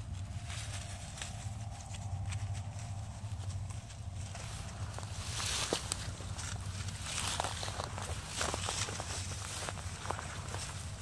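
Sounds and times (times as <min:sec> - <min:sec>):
dry grass rustling and crackling: 0:00.0 - 0:11.0
low rumble: 0:00.0 - 0:11.0.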